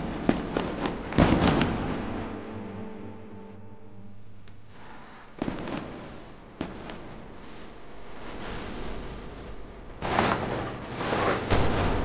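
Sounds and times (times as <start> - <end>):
firework bangs: 0.3 - 1.8
crackling hiss: 4.2 - 12.0.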